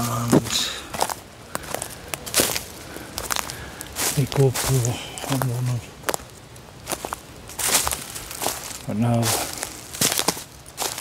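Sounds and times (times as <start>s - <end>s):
footsteps crunching dry leaves: 0.0s - 11.0s.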